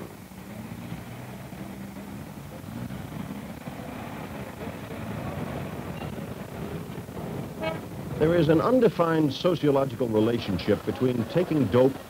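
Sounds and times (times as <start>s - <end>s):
steady traffic: 0.0s - 12.0s.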